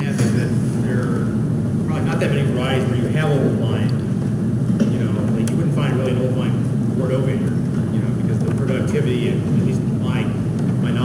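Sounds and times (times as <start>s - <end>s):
man speaking: 0.0s - 4.0s, 4.9s - 11.0s
low hum: 0.0s - 11.0s.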